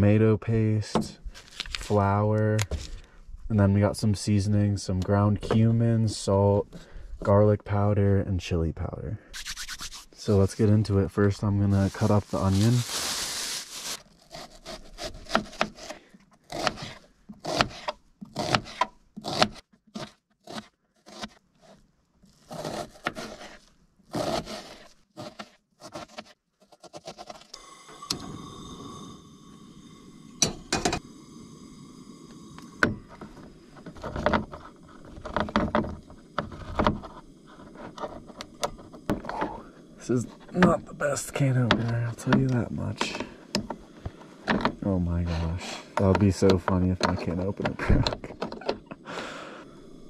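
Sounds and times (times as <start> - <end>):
knife cutting onion on board: 14.6 - 21.4, 24.2 - 27.4
steady hum with high tones: 27.6 - 35.1.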